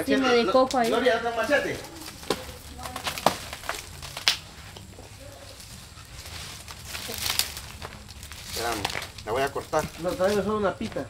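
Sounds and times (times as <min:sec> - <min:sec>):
low rustling: 0:00.8 - 0:11.0.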